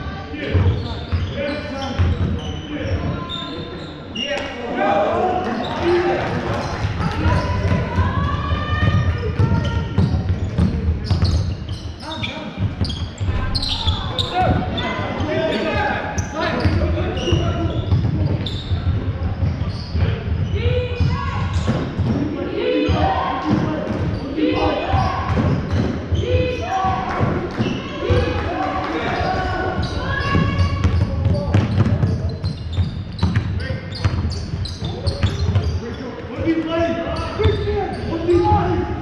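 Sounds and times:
people shouting in hall: 0:26.2 - 0:30.9
basketball dribbling on court: 0:29.8 - 0:35.8.

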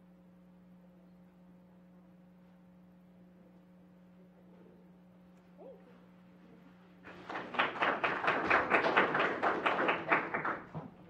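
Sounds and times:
group hand clapping: 0:07.0 - 0:11.0.

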